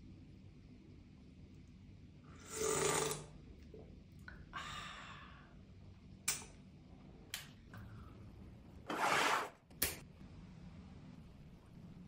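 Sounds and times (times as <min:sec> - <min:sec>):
person slurping soup: 0:02.4 - 0:03.4.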